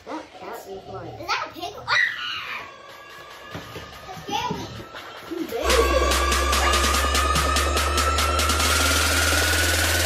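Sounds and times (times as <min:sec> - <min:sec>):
child speaking: 0:00.1 - 0:02.0, 0:04.1 - 0:04.8.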